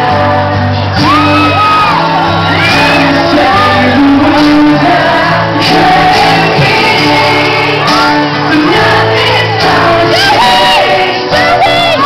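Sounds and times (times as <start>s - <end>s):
man singing long notes: 0.0s - 9.0s
pop-rock band playing live: 0.0s - 12.0s.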